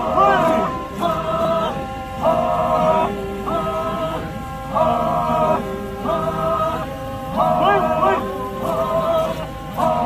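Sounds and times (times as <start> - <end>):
men chanting in harmony: 0.0 - 10.0.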